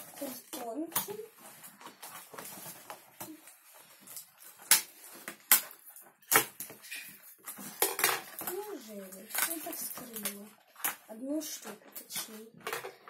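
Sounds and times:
packaging rustling: 0.0s - 11.1s.

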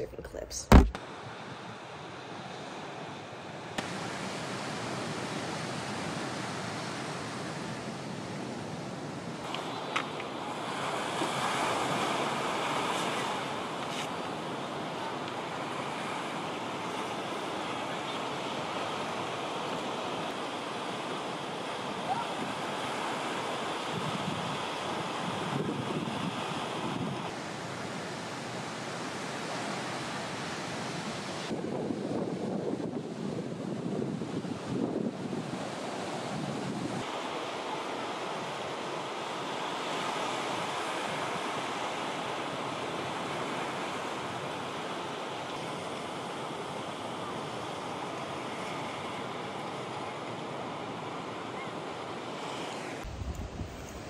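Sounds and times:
ocean surf breaking: 0.7s - 54.0s
wind rumbling on microphone: 23.9s - 27.4s, 30.9s - 37.1s, 53.0s - 54.0s.

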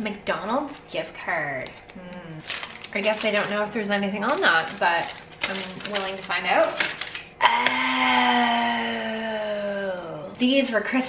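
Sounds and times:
woman speaking: 0.0s - 7.1s, 9.3s - 11.0s.

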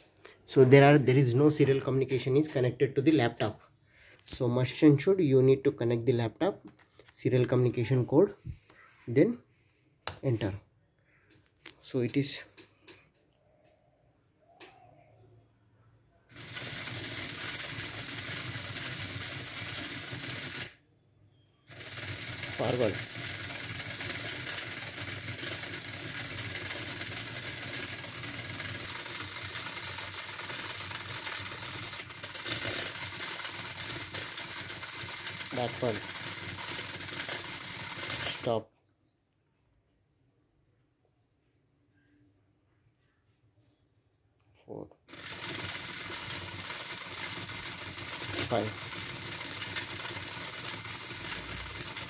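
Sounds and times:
small motors whirring: 16.3s - 20.8s, 21.7s - 38.5s, 45.1s - 52.0s.

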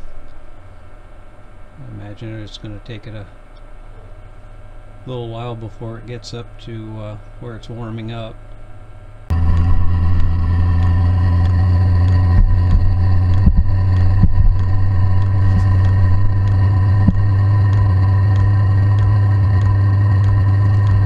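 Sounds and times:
heater fan and burner humming: 0.0s - 21.0s
fuel pump ticking: 9.3s - 21.0s.

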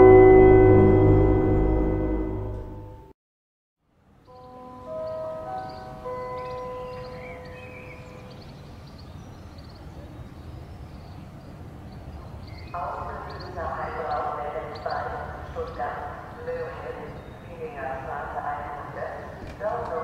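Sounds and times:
alarm gong tones: 0.0s - 3.1s, 4.3s - 8.5s
intro music: 0.0s - 3.1s.

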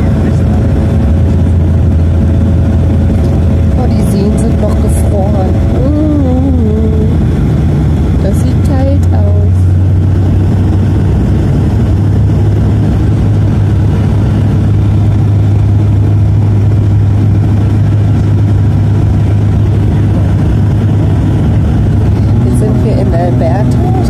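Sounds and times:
airliner cabin drone: 0.0s - 24.0s.

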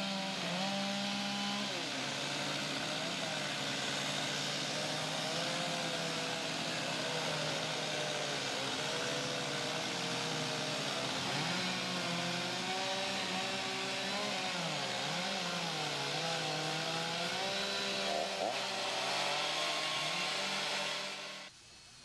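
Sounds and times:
chainsaws running: 0.0s - 21.5s.

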